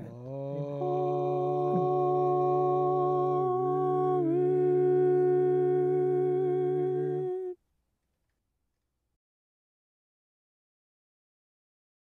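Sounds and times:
voice holding sustained note: 0:00.0 - 0:07.6.

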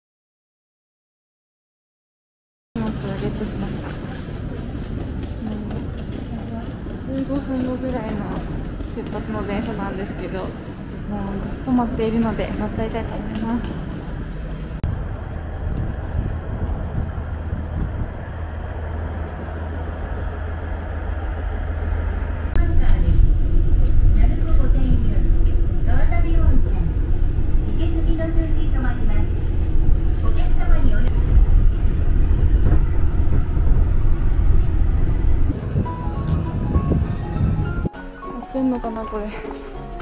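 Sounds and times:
diesel railcar rumbling: 0:02.8 - 0:40.0.

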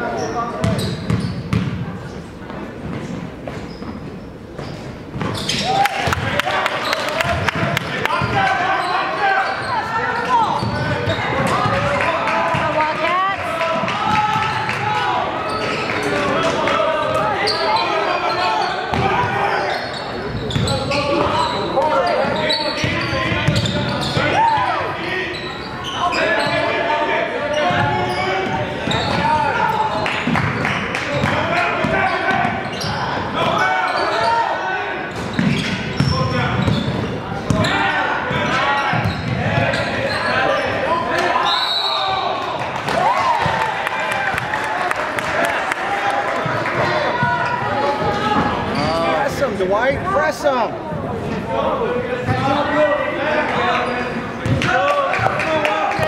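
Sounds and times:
people chattering and calling out: 0:00.0 - 0:56.0.

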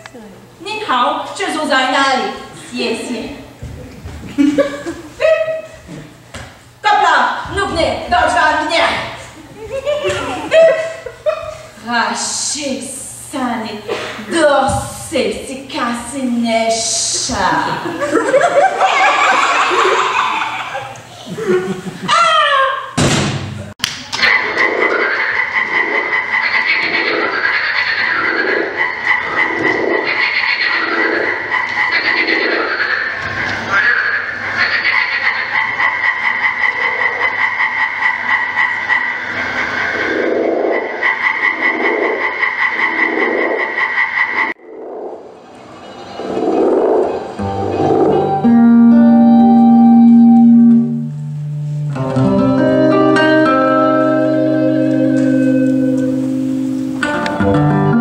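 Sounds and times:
frog-like croaking: 0:24.2 - 0:50.9
high trill: 0:47.4 - 0:54.6
loud sustained low note: 0:47.4 - 0:58.0.

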